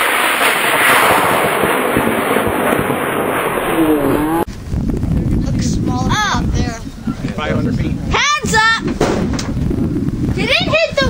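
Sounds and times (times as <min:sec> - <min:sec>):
wind rumbling on microphone: 0:00.0 - 0:11.0
people talking: 0:05.4 - 0:08.8, 0:10.4 - 0:11.0.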